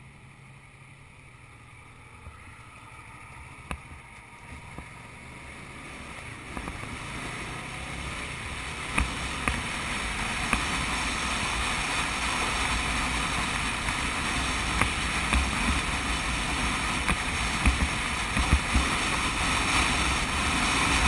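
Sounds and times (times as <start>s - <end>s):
wind noise on motorcycle: 3.7s - 21.0s
wind buffeting knocks: 13.7s - 19.4s.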